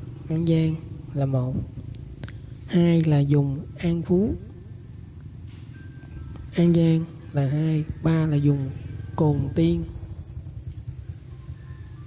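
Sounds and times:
high-pitched whine: 0:00.0 - 0:12.0
low rumble: 0:07.2 - 0:12.0.

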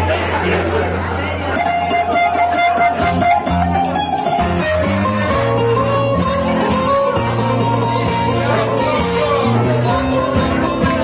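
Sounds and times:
crowd chatter: 0:00.0 - 0:11.0
plucked guitar notes: 0:01.5 - 0:11.0.

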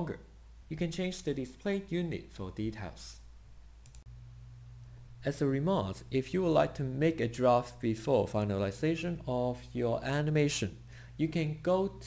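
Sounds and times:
low steady hum: 0:00.0 - 0:12.0
computer mouse clicks: 0:03.8 - 0:04.1.

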